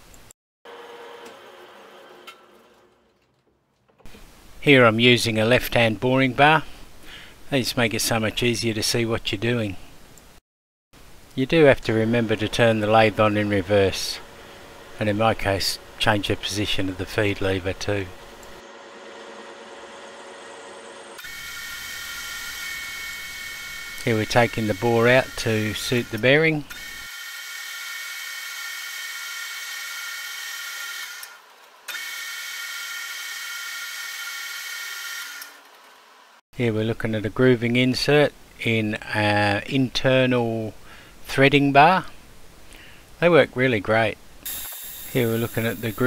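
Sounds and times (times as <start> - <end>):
lathe whining: 18.1 - 35.8.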